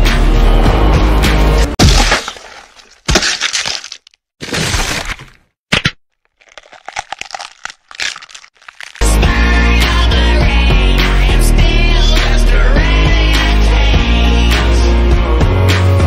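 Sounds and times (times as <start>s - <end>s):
music: 0.0s - 1.8s, 9.0s - 16.0s
small crackles: 6.2s - 9.0s.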